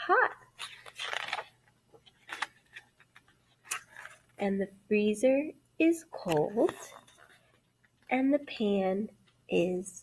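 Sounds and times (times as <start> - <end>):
book pages turning: 0.5 - 4.4, 6.2 - 8.2.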